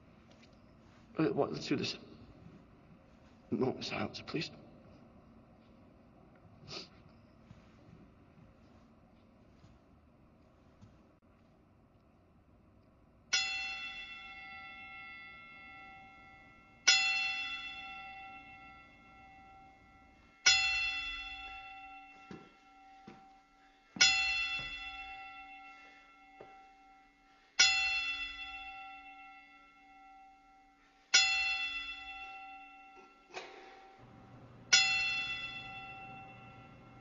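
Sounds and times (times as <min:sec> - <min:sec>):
bell tolling: 0:13.3 - 0:37.0.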